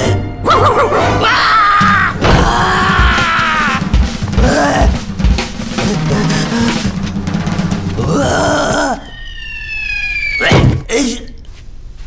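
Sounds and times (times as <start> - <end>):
cartoon descending whistle: 9.0 - 10.8.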